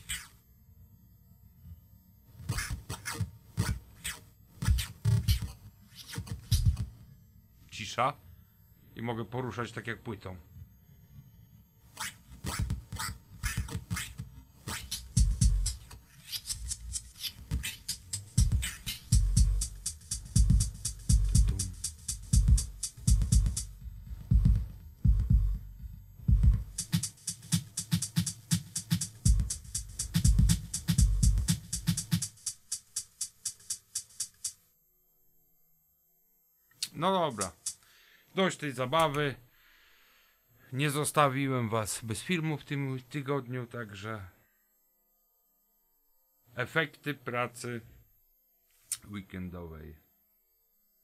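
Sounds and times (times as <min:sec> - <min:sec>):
electronic drum beat: 0:04.6 - 0:06.9, 0:12.5 - 0:34.6, 0:37.3 - 0:37.8.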